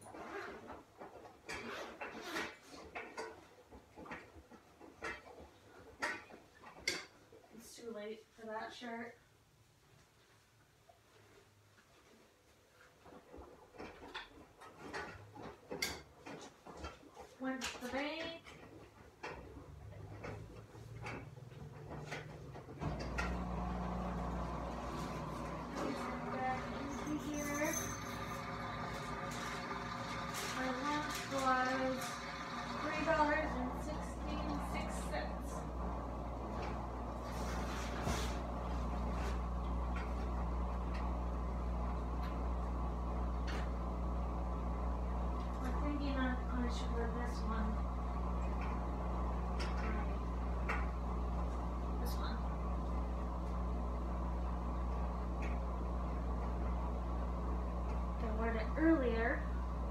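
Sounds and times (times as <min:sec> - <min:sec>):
low room hum: 0:00.1 - 0:59.9
clothing rustling: 0:33.0 - 0:40.5.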